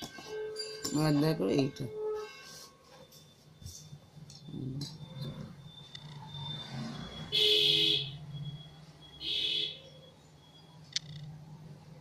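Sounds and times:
vehicle horn honks: 0:07.3 - 0:08.2, 0:09.2 - 0:09.8.

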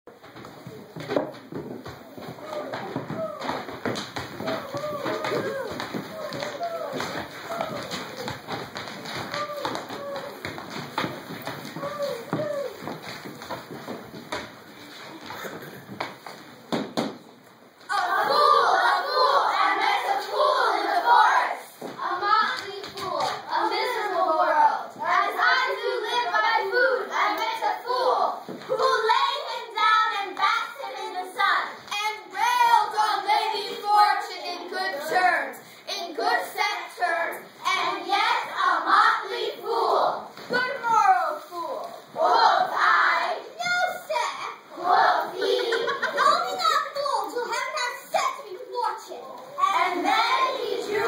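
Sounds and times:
children singing: 0:23.5 - 0:29.5, 0:49.6 - 0:51.0.

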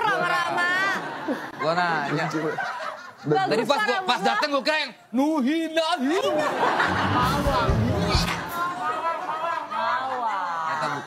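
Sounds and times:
people laughing and chuckling: 0:06.2 - 0:11.0.

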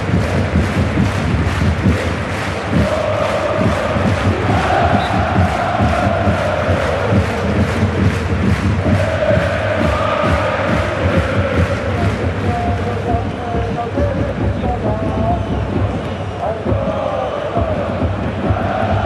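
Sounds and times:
steady drum beat: 0:00.0 - 0:19.0
voices chanting in unison: 0:02.1 - 0:19.0.

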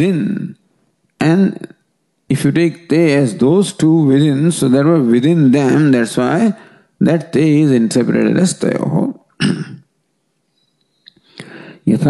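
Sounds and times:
man clearing his throat: 0:09.4 - 0:09.9.

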